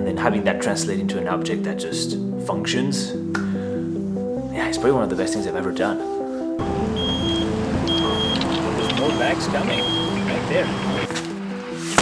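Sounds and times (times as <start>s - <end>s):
truck engine running: 6.6s - 11.1s
truck backup alarm beeping: 6.6s - 11.2s.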